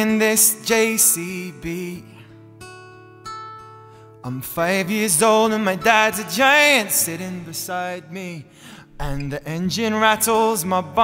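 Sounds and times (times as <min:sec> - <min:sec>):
acoustic guitar strumming chords: 0:00.0 - 0:11.0.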